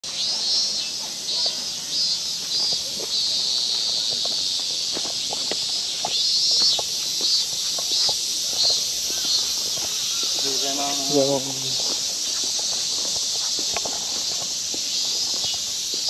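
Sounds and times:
cicadas buzzing: 0:00.0 - 0:16.0
footsteps on paved path: 0:00.0 - 0:16.0.

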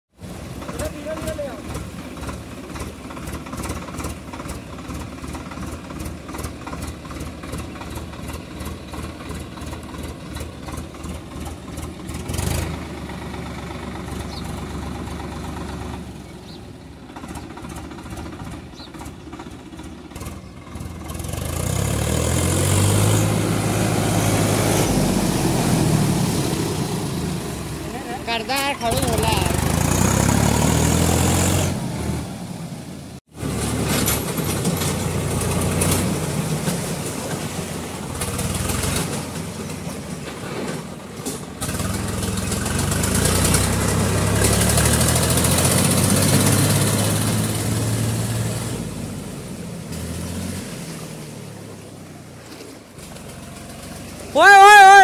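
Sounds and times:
water churning around wheels: 0:00.1 - 0:55.0
tractor diesel engine revving: 0:00.2 - 0:55.0.

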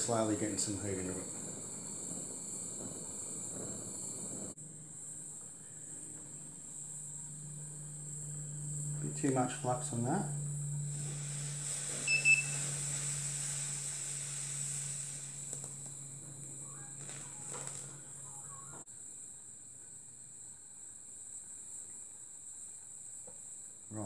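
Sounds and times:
steady low hum: 0:00.0 - 0:24.0
torch flame hissing: 0:00.0 - 0:24.0.

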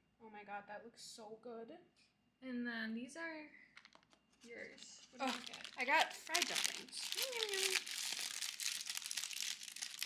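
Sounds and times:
paper bag crinkling: 0:03.9 - 0:10.0.

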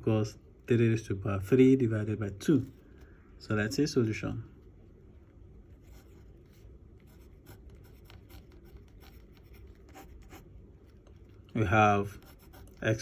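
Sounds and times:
pen scratching on paper: 0:05.8 - 0:11.0, 0:12.1 - 0:13.0.

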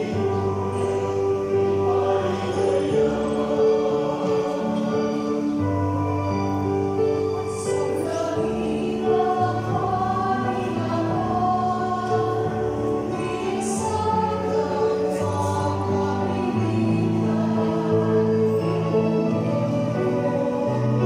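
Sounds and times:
mixed choir singing: 0:00.0 - 0:21.0.

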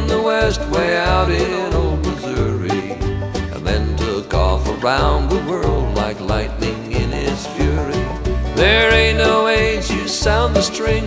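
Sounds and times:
banjo picking: 0:00.0 - 0:11.0.

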